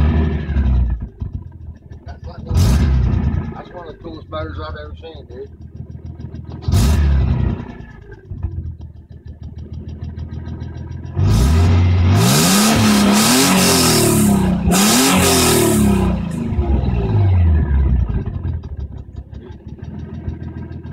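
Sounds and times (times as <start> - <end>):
car engine idling and revving: 0.0 - 20.9.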